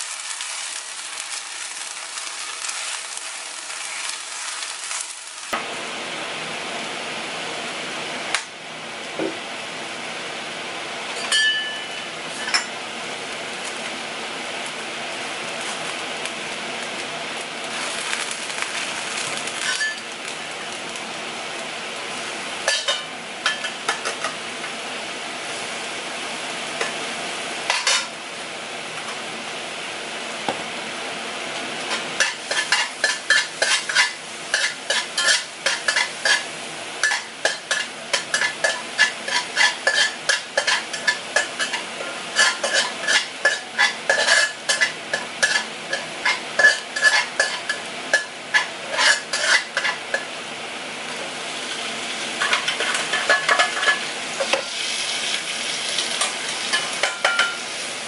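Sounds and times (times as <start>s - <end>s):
mushrooms sizzling in a wok: 0.0s - 58.0s
spatula scraping a wok: 31.9s - 50.4s, 52.4s - 55.1s.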